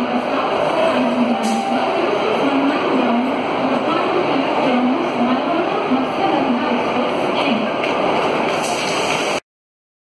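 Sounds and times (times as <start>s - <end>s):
train wheels rumbling on rail: 0.0s - 9.4s.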